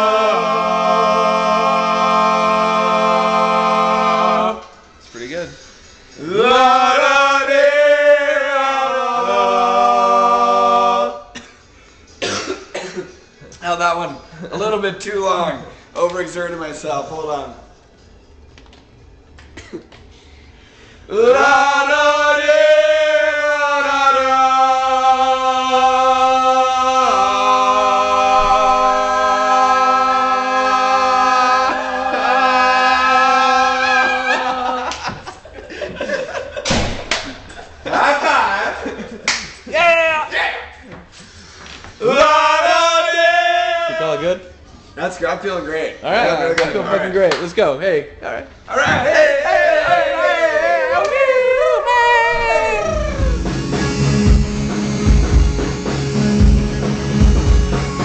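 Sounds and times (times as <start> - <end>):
men singing drone chord: 0.0 - 5.0, 6.2 - 11.5, 21.0 - 36.4, 42.0 - 44.0, 49.0 - 58.0.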